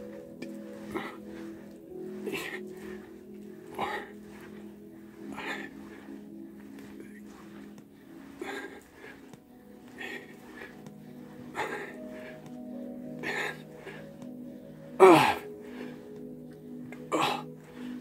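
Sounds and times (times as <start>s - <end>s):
background music: 0.0s - 18.0s
man breathing with effort: 0.0s - 18.0s.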